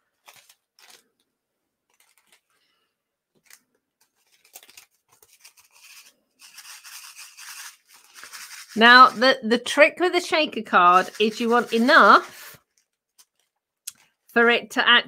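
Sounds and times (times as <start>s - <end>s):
cellophane bag crinkling: 0.0s - 2.7s, 3.3s - 9.2s, 10.8s - 14.2s
scratchy rustle of bag: 4.4s - 9.2s, 10.8s - 13.4s.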